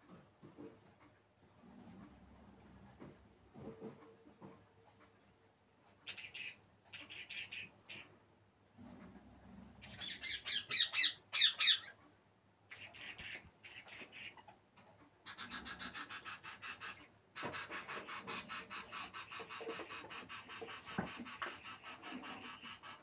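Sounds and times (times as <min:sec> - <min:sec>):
budgies squawking and chattering: 0:09.8 - 0:12.0, 0:12.7 - 0:14.5, 0:15.3 - 0:23.0.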